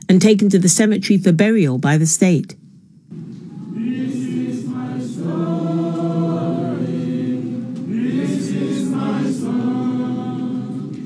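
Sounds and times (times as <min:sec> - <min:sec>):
group singing in chorus: 0:03.2 - 0:11.0.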